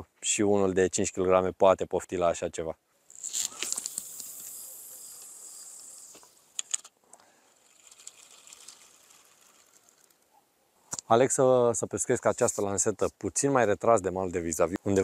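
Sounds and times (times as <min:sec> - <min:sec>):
line hissing off reel: 0:03.1 - 0:10.3.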